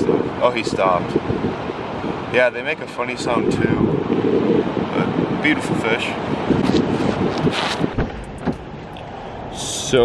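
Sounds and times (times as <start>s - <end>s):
wind buffeting microphone: 0.0s - 10.0s
short knocks: 7.9s - 8.7s.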